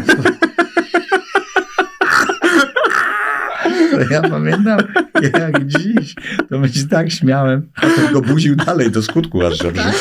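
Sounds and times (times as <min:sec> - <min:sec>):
man laughing hard: 0:00.0 - 0:06.5, 0:07.8 - 0:10.0.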